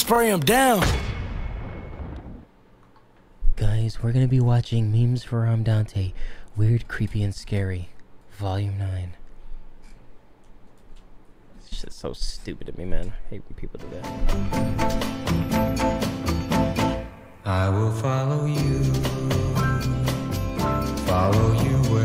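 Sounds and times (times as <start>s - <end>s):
deep boom: 0.8s - 2.5s
intro music: 13.9s - 22.0s.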